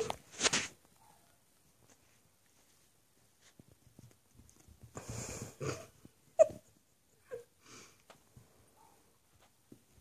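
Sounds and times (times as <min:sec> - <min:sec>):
puppy yipping: 0:06.4 - 0:06.7.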